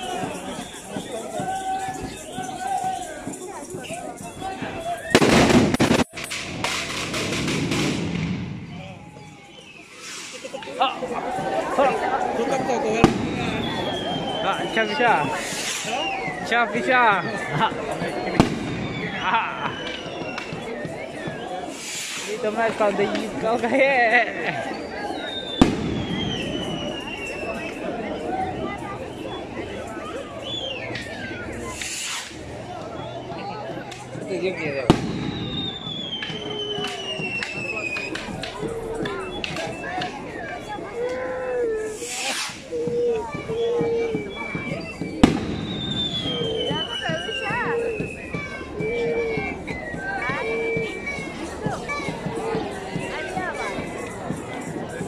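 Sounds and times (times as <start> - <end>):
crowd chatter and shouts: 0.0 - 55.0
firecracker bang: 5.1 - 9.2, 13.0 - 14.4, 18.0 - 20.7, 21.7 - 23.4, 25.5 - 27.2, 34.8 - 40.2, 43.3 - 47.2
firecracker pops: 5.1 - 9.2, 13.0 - 14.4, 15.2 - 16.2, 18.0 - 23.4, 25.4 - 27.8, 30.9 - 32.4, 34.8 - 40.3, 41.9 - 49.0
falling whistle-like tone: 13.1 - 22.4, 24.8 - 28.2, 35.2 - 40.9, 41.9 - 51.4
high-pitched shout from crowd: 35.4 - 54.3.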